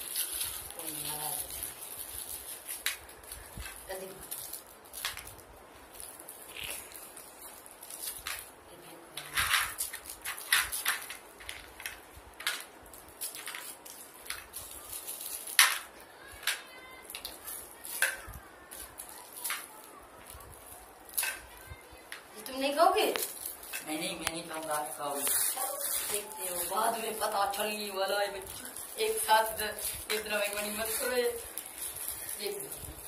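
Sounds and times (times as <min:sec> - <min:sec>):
wrappers crinkling: 0:00.0 - 0:33.0.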